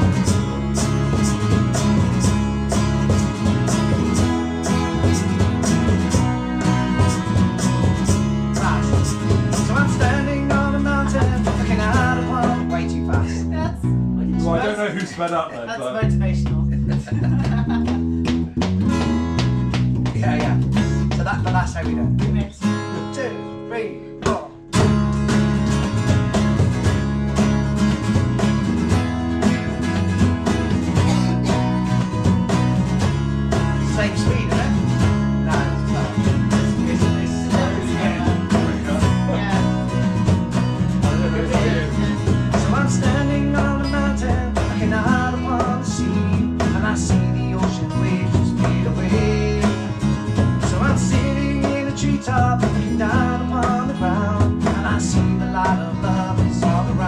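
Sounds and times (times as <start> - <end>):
electric bass: 0.0 - 15.0, 15.7 - 57.0
strummed acoustic guitars: 0.0 - 57.0.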